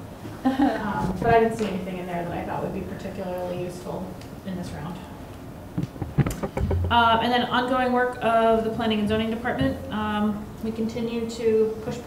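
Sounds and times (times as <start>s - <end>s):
desk handling clicks and knocks: 5.8s - 7.0s
low rumble: 5.8s - 7.5s
person speaking: 5.8s - 7.7s.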